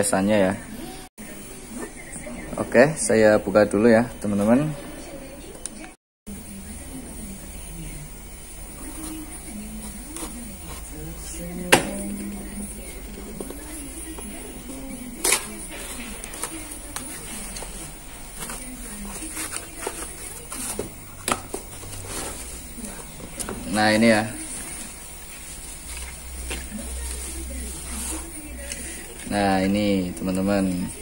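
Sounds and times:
cardboard and tape rustling: 13.3s - 29.5s.

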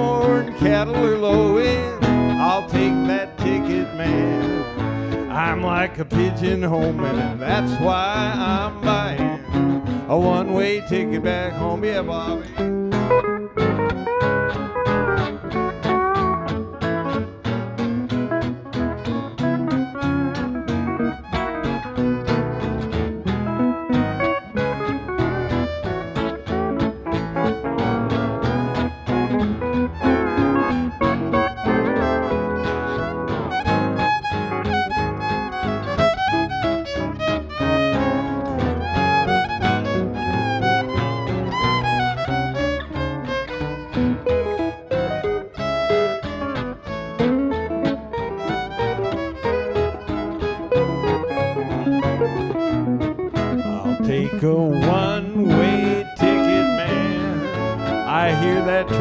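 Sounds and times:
fiddle: 0.0s - 59.0s
pedal steel guitar solo: 0.0s - 59.0s
western swing band: 0.0s - 59.0s.

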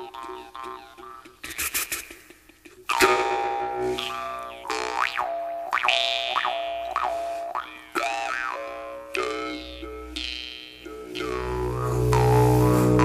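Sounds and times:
jaw harp twanging: 2.9s - 13.0s.

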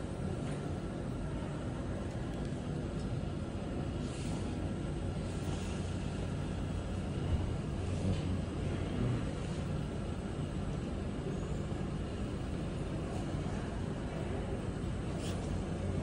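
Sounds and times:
low background rumble: 0.0s - 16.0s.

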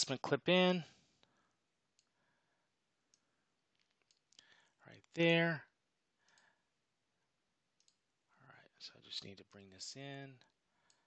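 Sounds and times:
faint computer mouse clicks: 3.1s - 4.6s, 6.2s - 6.5s, 7.8s - 8.0s.

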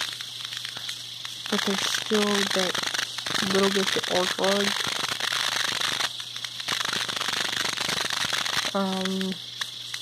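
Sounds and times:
crackling clicks: 0.0s - 10.0s
low steady hum: 0.0s - 10.0s
steady hiss: 0.0s - 10.0s.

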